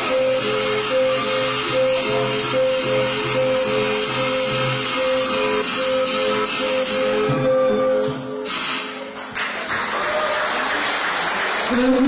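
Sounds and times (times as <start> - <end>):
audience applauding: 9.1 - 12.0.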